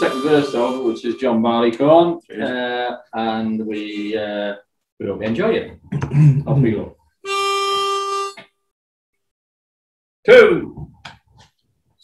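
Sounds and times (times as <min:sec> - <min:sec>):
pitch pipe note: 0:00.0 - 0:01.4.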